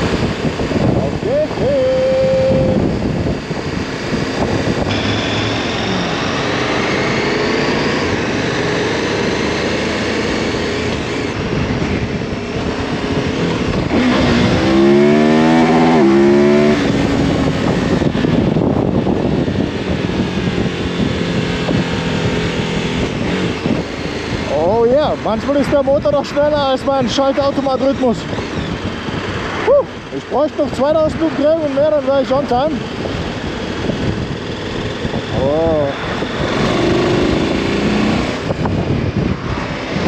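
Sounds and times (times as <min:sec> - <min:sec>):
motorcycle engine accelerating: 0:00.0 - 0:40.0.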